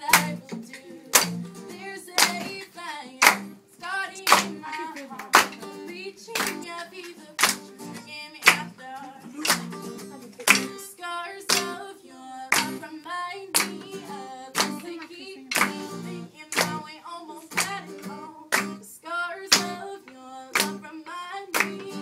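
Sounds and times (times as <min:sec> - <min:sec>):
hands clapping on the beat: 0:00.0 - 0:10.9, 0:11.5 - 0:11.9, 0:12.5 - 0:12.8, 0:13.5 - 0:16.9, 0:17.5 - 0:18.8, 0:19.5 - 0:20.9, 0:21.5 - 0:22.0
acoustic guitar: 0:00.0 - 0:22.0
woman singing: 0:00.0 - 0:22.0.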